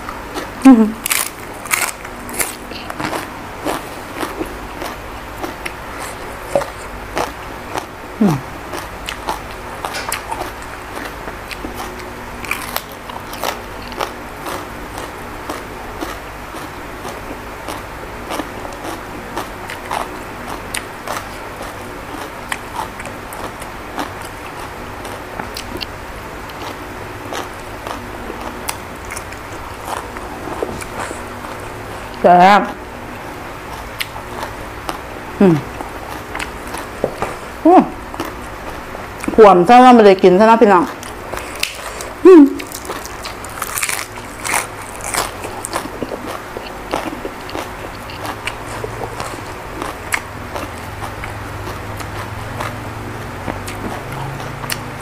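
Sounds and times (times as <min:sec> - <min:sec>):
chewing: 0:00.0 - 0:32.2, 0:33.7 - 0:39.4, 0:40.8 - 0:55.0
crunching on raw leaf: 0:01.0 - 0:05.0, 0:41.3 - 0:52.8.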